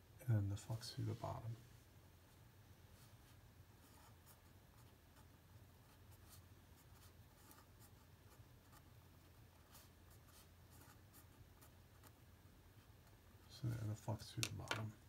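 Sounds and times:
marker pen scratching on paper: 3.8 - 12.2.

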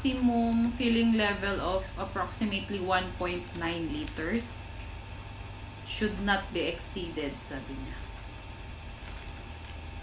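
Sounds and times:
steady low hum: 0.0 - 10.0
paper booklet rustling: 9.0 - 10.0.

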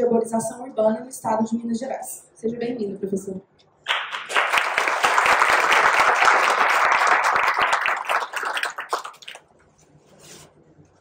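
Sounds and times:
audience applauding: 3.9 - 9.5.

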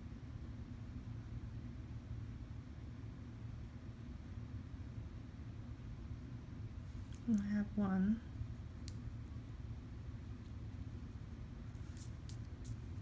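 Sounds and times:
low room noise rumble: 0.0 - 13.0.

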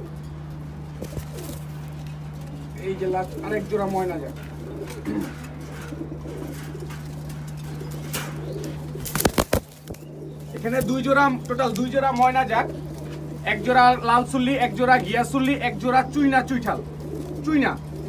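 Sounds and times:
pigeons cooing: 0.0 - 18.0
steady low hum: 0.0 - 18.0.

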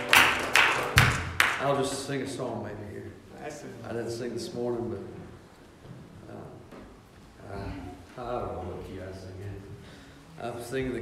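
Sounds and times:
sharp hits or claps: 0.0 - 1.8
man talking: 1.6 - 5.4, 6.2 - 6.8, 7.4 - 11.0.

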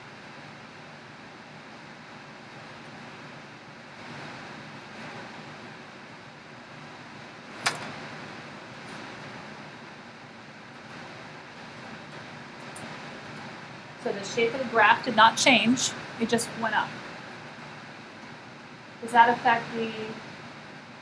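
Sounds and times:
low room noise: 0.0 - 21.0.

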